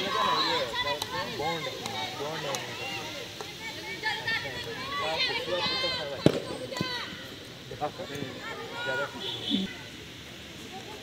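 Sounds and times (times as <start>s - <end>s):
players shouting: 0.0s - 9.9s.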